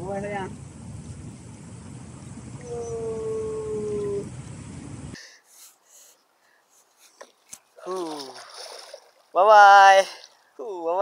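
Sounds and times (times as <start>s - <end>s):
howl-like calls: 2.6s - 4.3s.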